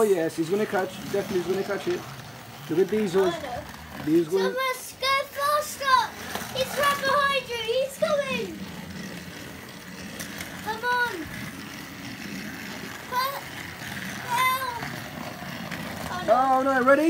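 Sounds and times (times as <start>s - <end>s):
toy train motors whirring: 0.0s - 17.0s
child's high-pitched voice: 3.2s - 8.8s, 10.6s - 11.5s, 13.0s - 15.2s, 16.0s - 16.6s.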